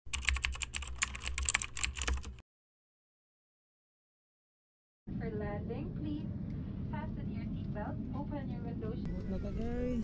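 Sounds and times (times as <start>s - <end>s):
computer keyboard typing: 0.1s - 2.4s.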